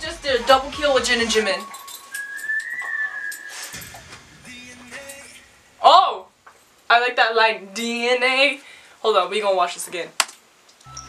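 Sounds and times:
whistled note: 0.4 - 5.4.

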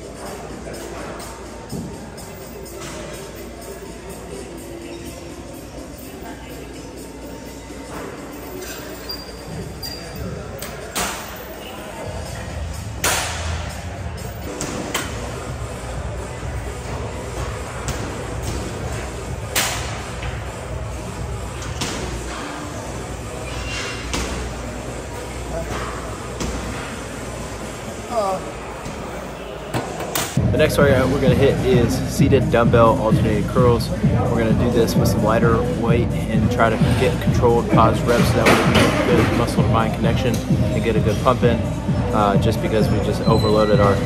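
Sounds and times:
music: 0.0 - 26.6, 30.4 - 44.0
background chatter: 0.0 - 44.0.

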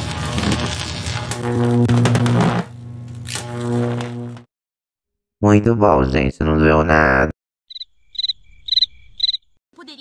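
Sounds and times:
electric buzz with crackling zaps: 0.0 - 4.5.

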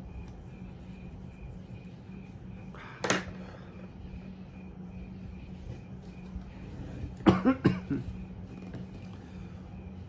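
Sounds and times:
man coughing: 7.2 - 8.1.

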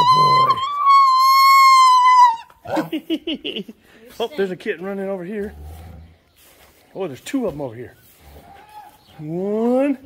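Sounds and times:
animal high steady call: 0.0 - 2.5.

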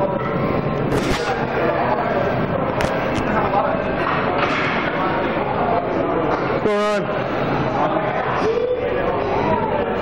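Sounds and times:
overlapping voices and chatter: 0.0 - 10.0.

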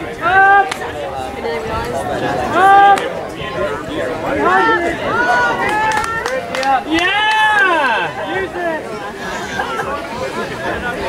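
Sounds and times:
shouting and chatter: 0.0 - 11.0.

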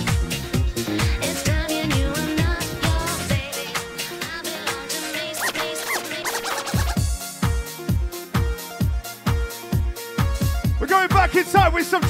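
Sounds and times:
dance track: 0.0 - 12.0
turntable scratching: 5.2 - 7.0.

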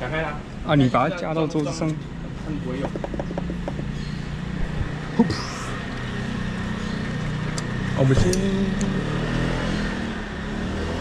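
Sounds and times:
vehicle engine running: 2.0 - 9.4.

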